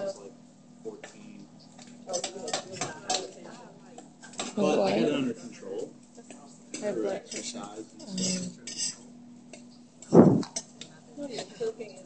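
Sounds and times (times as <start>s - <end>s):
low voices: 10.1s - 11.7s.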